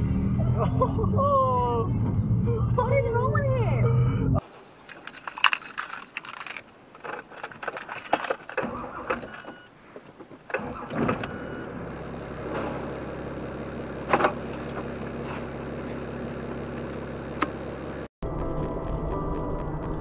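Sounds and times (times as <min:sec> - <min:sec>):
low car hum: 0:00.0 - 0:20.0
clicking and jangling rattles: 0:04.4 - 0:08.8.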